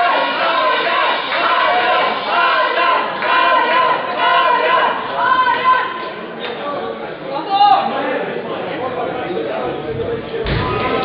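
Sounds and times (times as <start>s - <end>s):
loud shout: 0.0s - 6.1s.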